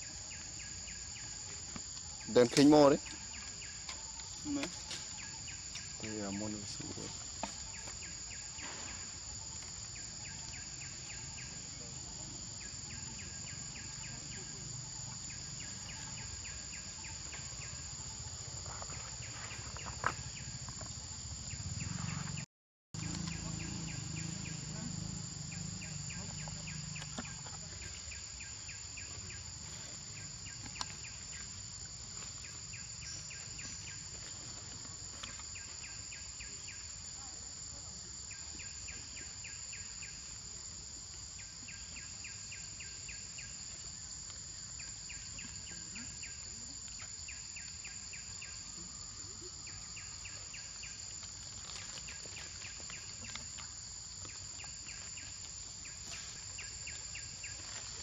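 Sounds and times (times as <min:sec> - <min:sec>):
high insect drone: 0:00.0 - 0:58.0
insects chirping rapidly: 0:00.0 - 0:58.0.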